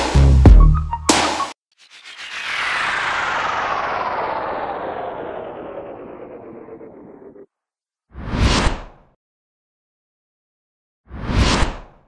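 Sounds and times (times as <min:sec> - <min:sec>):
whoosh of rushing noise: 0:01.8 - 0:07.4.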